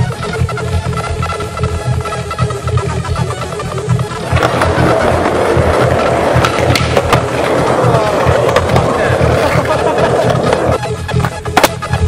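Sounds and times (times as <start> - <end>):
music with steady beat: 0.0 - 12.0
skateboard clacking: 0.0 - 12.0
skateboard wheels rolling on concrete: 3.0 - 12.0.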